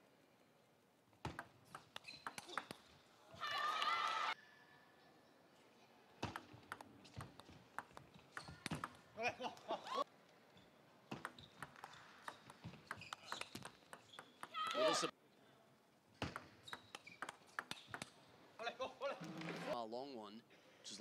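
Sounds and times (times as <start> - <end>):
table tennis ball clicks: 1.3 - 2.8, 6.2 - 9.0, 11.1 - 14.6, 16.2 - 18.2
people shouting: 14.5 - 15.1.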